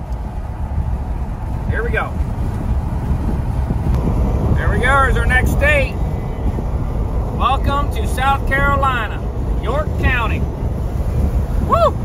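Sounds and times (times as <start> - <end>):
wind and road noise rumble: 0.0 - 12.0.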